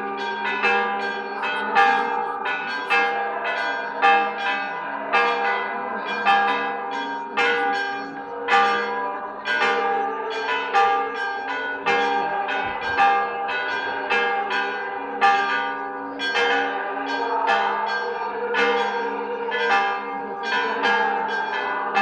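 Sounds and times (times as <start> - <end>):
church bells ringing: 0.0 - 22.0.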